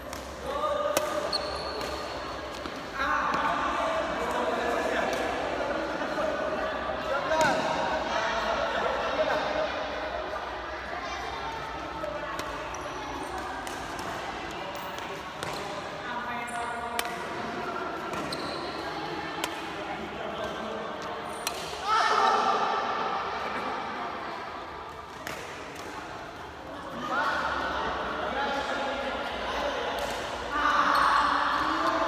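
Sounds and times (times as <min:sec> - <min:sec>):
rackets hitting shuttlecock: 0:00.0 - 0:03.5, 0:16.9 - 0:18.5, 0:21.2 - 0:21.8
loud shout: 0:21.8 - 0:22.6.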